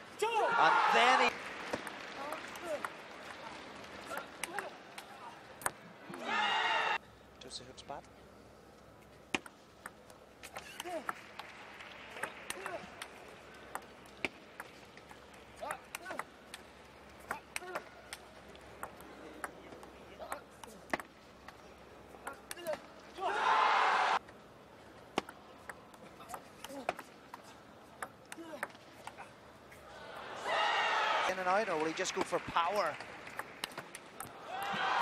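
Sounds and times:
low arena noise: 0.0s - 35.0s
table tennis ball clicking: 12.2s - 15.2s, 15.9s - 21.2s.

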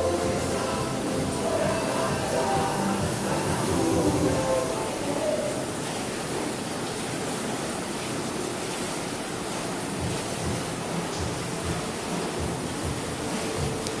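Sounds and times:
hot tub jets churning water: 0.0s - 14.0s
soft low thumps: 10.0s - 13.8s.

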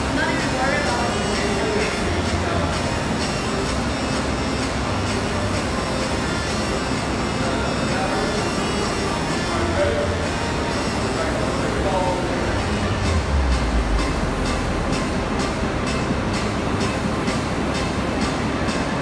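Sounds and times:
voices: 0.0s - 17.1s
background music: 0.0s - 19.0s
rowing machine fan whooshing: 0.0s - 19.0s.

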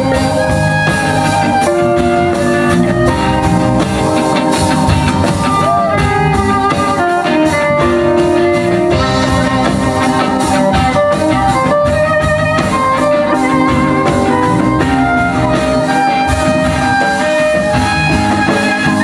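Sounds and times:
drum kit: 0.0s - 19.0s
strummed small guitars: 0.0s - 19.0s.

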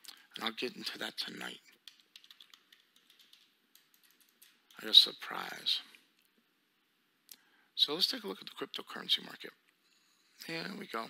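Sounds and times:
keyboard typing: 1.7s - 4.8s.

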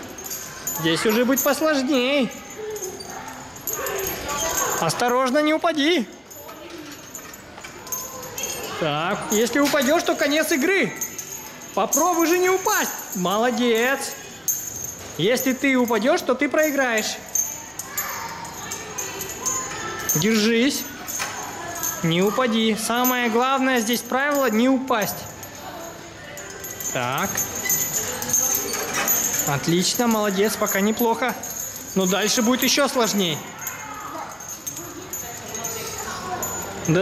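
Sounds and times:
faint music: 0.0s - 37.0s
light jingly clicks: 0.0s - 37.0s.

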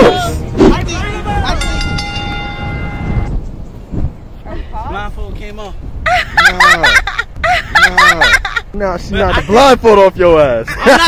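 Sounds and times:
steady pitched tone: 0.8s - 3.4s.

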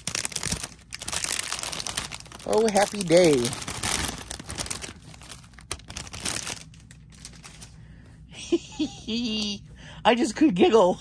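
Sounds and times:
plastic bags crinkling: 0.0s - 7.8s.

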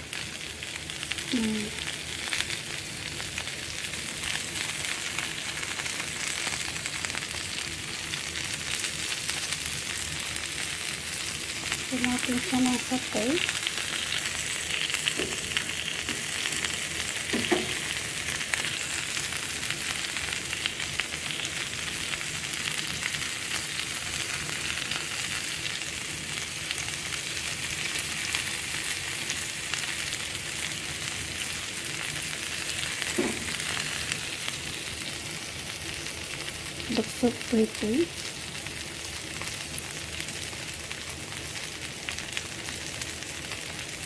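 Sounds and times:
meat sizzling on a grill pan: 0.0s - 44.0s.

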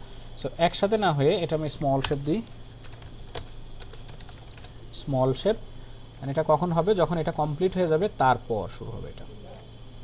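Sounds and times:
person speaking: 0.4s - 2.6s
computer keyboard clicks: 2.8s - 4.7s.

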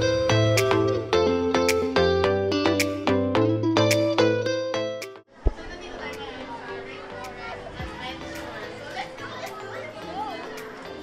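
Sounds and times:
background music: 0.0s - 11.0s
children chattering: 5.3s - 11.0s.

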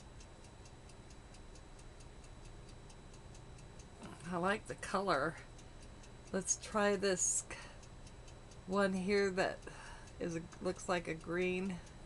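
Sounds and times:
faint steady ticking: 0.0s - 12.0s.

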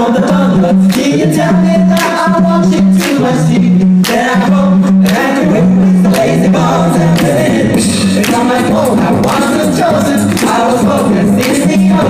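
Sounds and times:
male a cappella group singing: 0.0s - 12.0s
sung bass line: 0.0s - 12.0s
vocal percussion beat: 0.0s - 12.0s.

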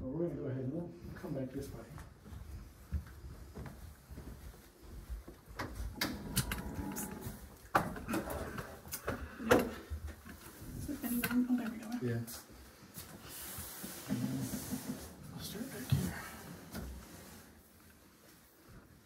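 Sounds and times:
footsteps: 1.0s - 17.2s.

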